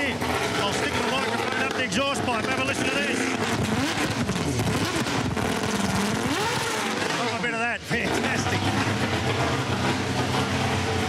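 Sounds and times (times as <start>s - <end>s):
car engine revving and idling: 0.0s - 11.0s.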